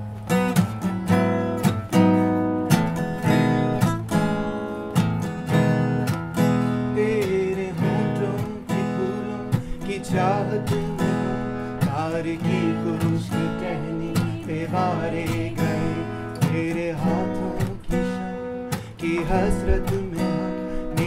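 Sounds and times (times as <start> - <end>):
acoustic guitar strumming chords: 0.0 - 21.0.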